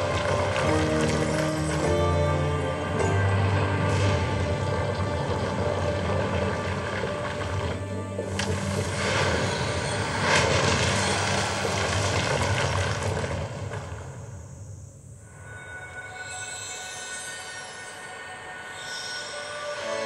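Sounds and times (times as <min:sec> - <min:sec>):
quiet sustained tones: 0:00.0 - 0:13.1, 0:14.1 - 0:20.0
low hum: 0:00.0 - 0:16.5.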